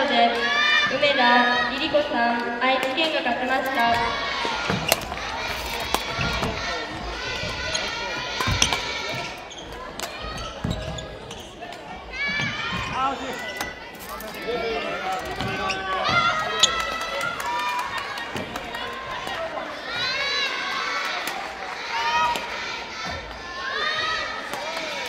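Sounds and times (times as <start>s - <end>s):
children calling and chattering: 0.0s - 25.0s.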